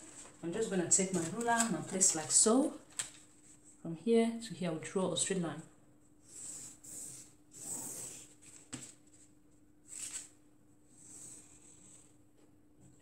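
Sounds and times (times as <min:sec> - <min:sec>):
pen strokes on paper: 0:06.2 - 0:08.6.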